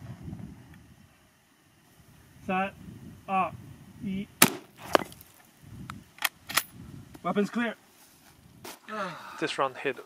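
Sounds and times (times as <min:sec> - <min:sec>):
rifle shot ringing: 0:04.4 - 0:04.7
rifle action metallic clicks: 0:06.2 - 0:06.7.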